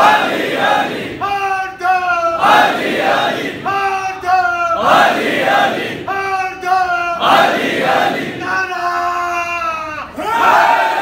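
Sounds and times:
man calling phrases: 1.2 - 2.4, 3.6 - 4.8, 6.1 - 7.2, 8.4 - 10.2.

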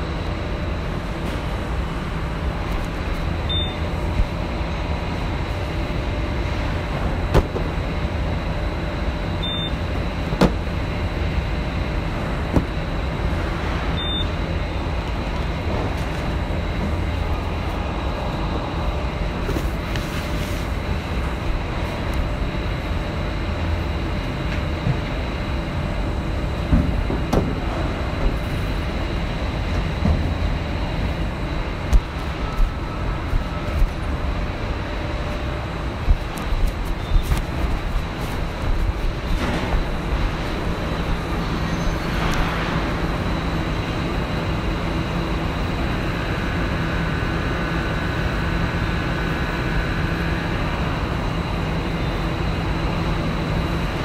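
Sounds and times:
factory machinery rumbling: 0.0 - 54.0
faint high whine: 40.4 - 54.0.

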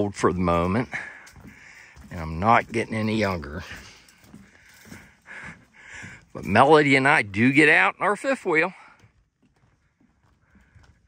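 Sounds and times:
faint footsteps on wooden boardwalk: 0.0 - 11.0
soft breathing: 0.8 - 2.1, 3.6 - 6.4, 8.7 - 11.0.

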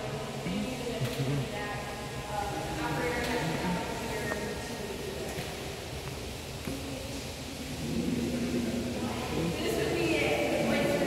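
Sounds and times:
faint distant voices: 0.0 - 11.0
large room background noise: 0.0 - 11.0.

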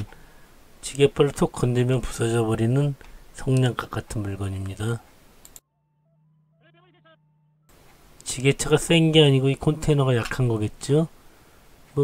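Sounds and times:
short wavering pitched sound: 5.6 - 7.8.

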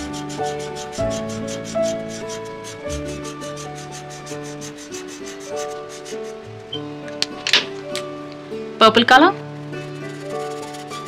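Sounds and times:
marker rubbing on paper: 0.0 - 6.7, 10.0 - 11.0
gentle background music: 0.0 - 11.0.

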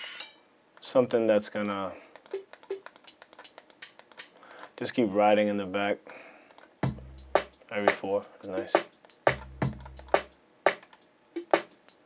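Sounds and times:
hi-hat ticks: 1.5 - 4.5, 6.5 - 12.0.

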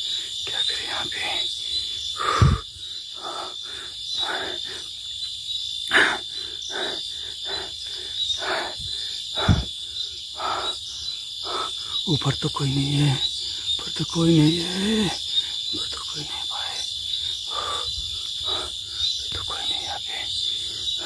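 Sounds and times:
crickets chirping: 0.0 - 21.0.

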